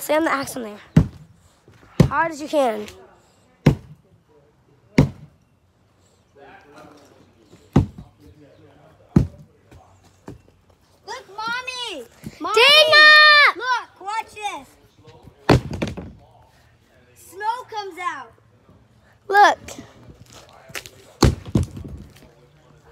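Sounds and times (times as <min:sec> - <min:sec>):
axe striking wooden boards: 0:03.6 - 0:04.0, 0:05.0 - 0:05.3, 0:07.8 - 0:08.0, 0:09.2 - 0:09.4, 0:15.5 - 0:16.2, 0:21.2 - 0:22.0
girl yelling: 0:12.4 - 0:13.7.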